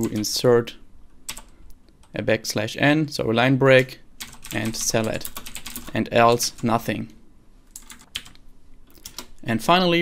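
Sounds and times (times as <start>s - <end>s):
computer keyboard keystrokes: 1.3s - 1.5s, 4.2s - 5.9s, 7.8s - 9.3s.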